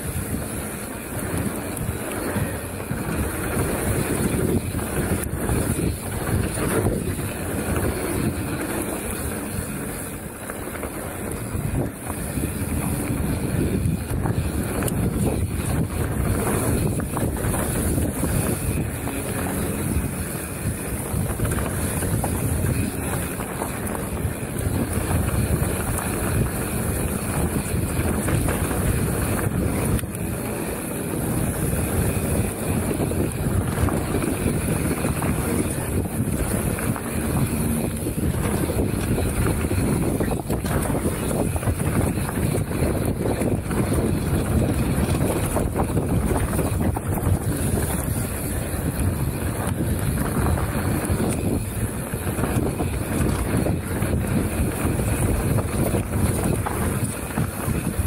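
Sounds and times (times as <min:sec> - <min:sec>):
bike rattling: 0:00.0 - 0:58.0
bike tyres on gravel: 0:00.0 - 0:58.0
wind buffeting microphone: 0:00.0 - 0:58.0.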